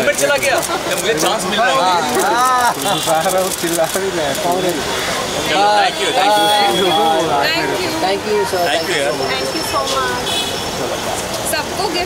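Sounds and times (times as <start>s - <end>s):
people talking over one another: 0.0s - 12.0s
vehicle noise: 0.0s - 12.0s.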